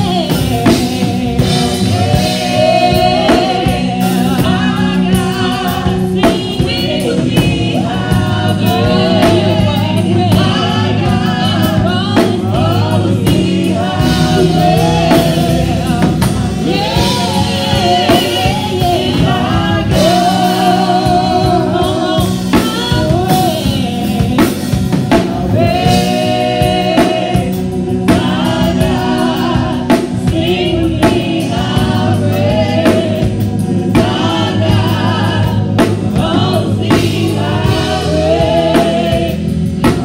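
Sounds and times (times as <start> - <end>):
group singing gospel: 0.0 - 40.0
instrumental backing with drums: 0.0 - 40.0.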